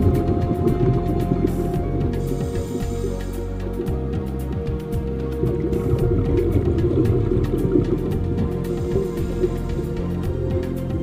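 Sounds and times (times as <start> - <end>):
low rumble: 0.0 - 10.5
underwater bubbling: 0.0 - 10.6.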